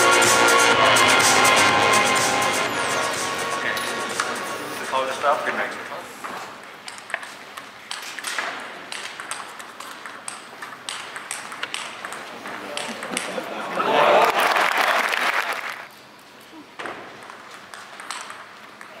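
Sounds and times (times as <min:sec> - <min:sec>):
table tennis ball clicks: 0:06.8 - 0:13.3, 0:17.2 - 0:18.9
crowd applause: 0:13.3 - 0:15.9.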